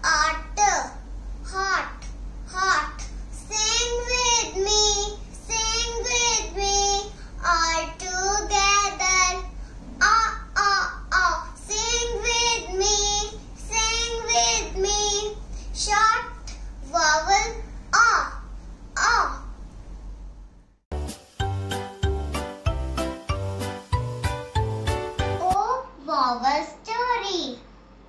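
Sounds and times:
girl singing: 2.5s - 9.4s, 10.0s - 16.3s.

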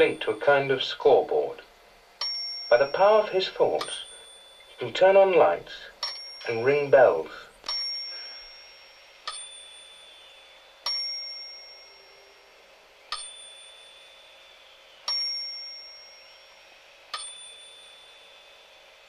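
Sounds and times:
small bells ringing: 2.2s - 18.7s.

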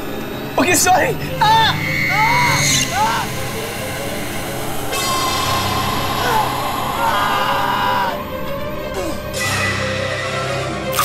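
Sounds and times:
low sustained drone: 0.0s - 10.9s
shrill high held tone: 1.4s - 8.2s.

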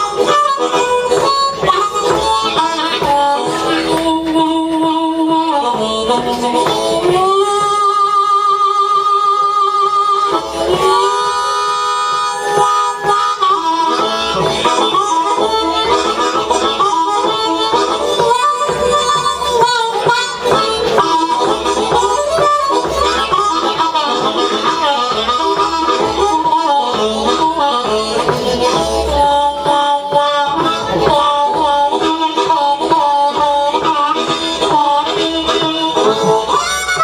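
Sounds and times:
amplified blues harmonica: 0.0s - 37.0s.

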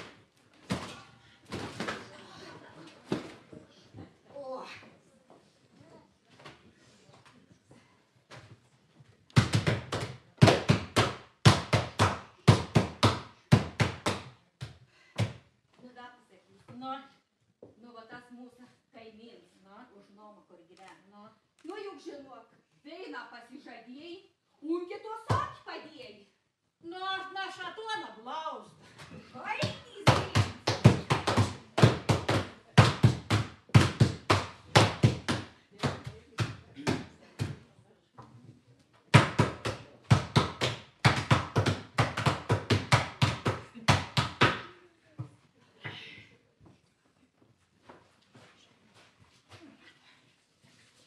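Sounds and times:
wooden paddle beating linen: 9.4s - 15.4s, 29.6s - 37.6s, 39.2s - 44.7s.

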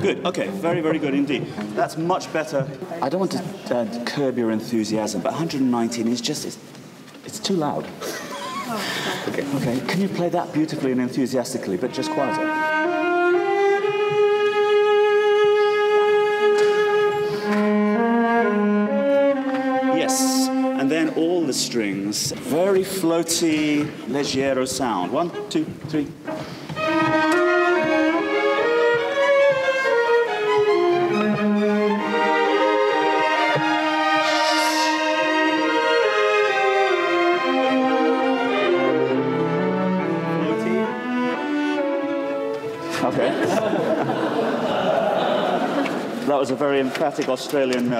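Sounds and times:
string section playing slowly: 0.0s - 7.1s, 8.3s - 47.3s.

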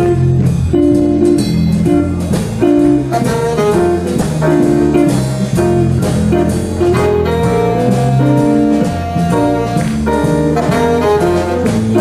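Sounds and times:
electric guitar: 0.0s - 12.0s
jazz blues band playing: 0.0s - 12.0s
tenor saxophone: 2.7s - 5.8s, 6.8s - 12.0s.

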